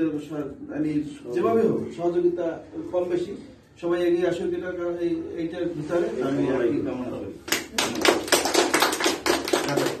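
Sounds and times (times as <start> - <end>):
small group applauding: 7.4 - 10.0.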